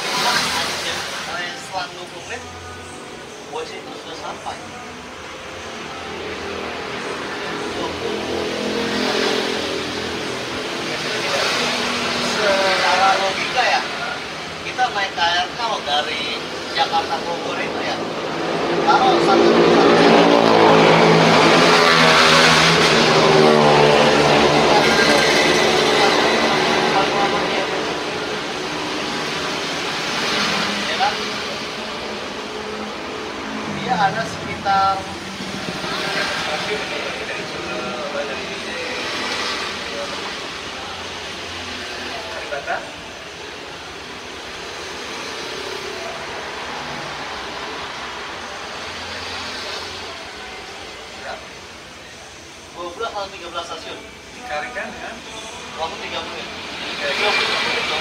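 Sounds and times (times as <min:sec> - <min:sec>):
vehicle passing: 0:00.0 - 0:58.0
voices talking: 0:00.0 - 0:58.0.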